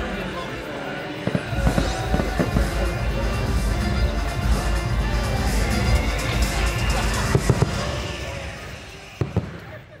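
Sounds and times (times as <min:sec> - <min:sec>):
music: 0:00.0 - 0:10.0
voices: 0:00.0 - 0:10.0
fireworks bangs: 0:01.2 - 0:10.0.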